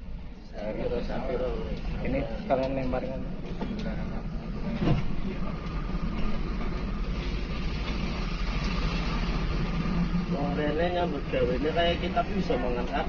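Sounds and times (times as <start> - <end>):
bus engine drone: 0.0 - 13.0
road rumble: 0.0 - 13.0.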